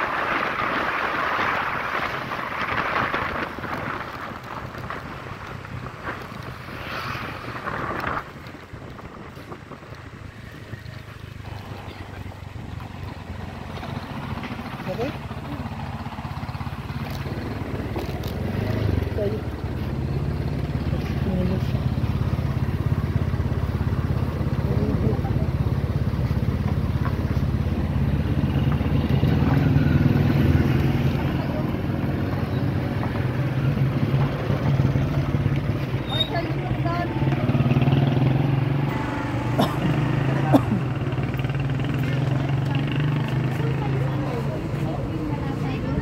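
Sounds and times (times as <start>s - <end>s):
motorcycle engine idling: 9.5s - 30.1s.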